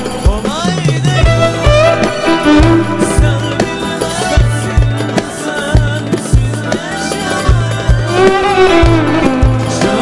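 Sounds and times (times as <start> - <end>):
drum thumps: 0.0 - 6.9.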